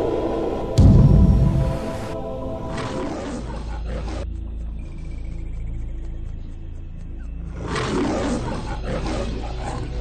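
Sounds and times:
loud noisy whoosh: 0.0s - 2.6s.

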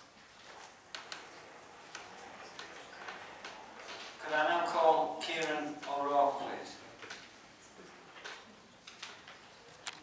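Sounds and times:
faint clicks and ticks: 0.4s - 4.1s.

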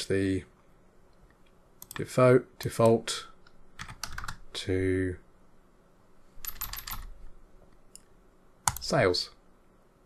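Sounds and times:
computer keyboard keystrokes: 1.8s - 4.4s, 6.4s - 7.1s, 8.6s - 8.9s.

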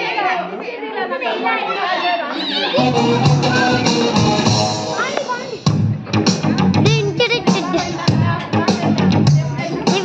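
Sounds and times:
women talking and calling out: 4.8s - 10.0s.

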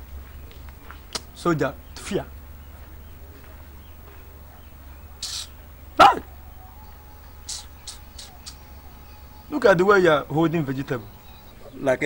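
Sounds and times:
dog barking: 4.4s - 6.4s.

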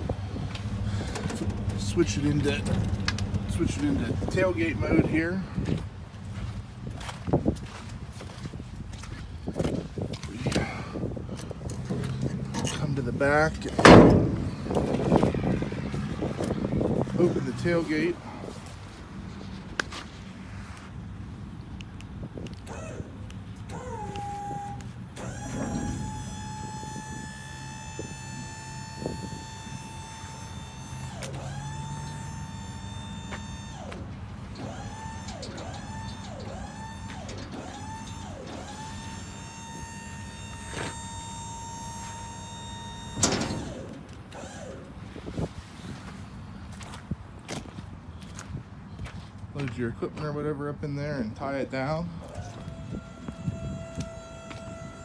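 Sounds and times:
hydraulic pump motor whining: 0.0s - 18.8s, 22.6s - 45.5s, 52.2s - 55.0s
footsteps on slushy pavement: 5.6s - 10.5s, 45.8s - 50.3s
sharp bang: 13.8s - 14.8s.

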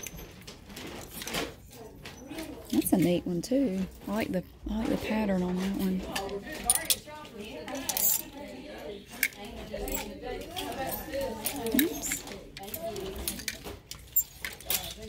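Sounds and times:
clothes hangers clicking on rack: 0.0s - 8.5s, 9.1s - 15.0s
shoppers talking: 1.5s - 15.0s.

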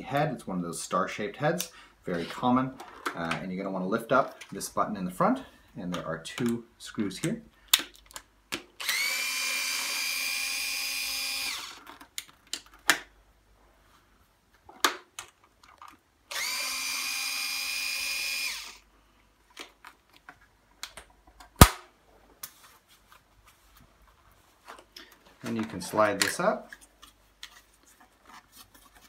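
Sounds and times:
electric screwdriver whine: 8.8s - 11.8s, 16.3s - 18.8s.

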